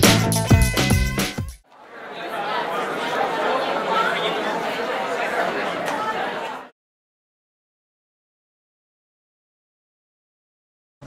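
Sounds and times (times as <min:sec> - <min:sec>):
indistinct chatter of voices: 0:01.7 - 0:06.7.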